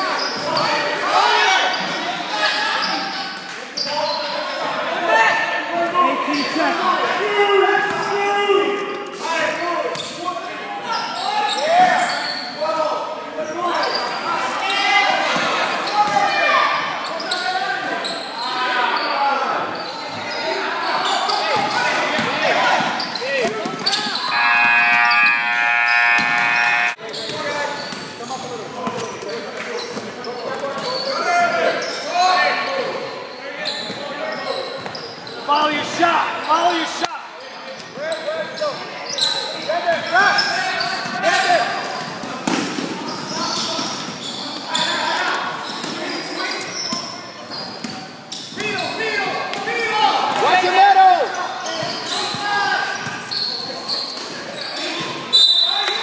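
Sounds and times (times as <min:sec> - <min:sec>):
voices calling out: 0:10.7 - 0:28.5
steady buzzer tone: 0:24.3 - 0:27.0.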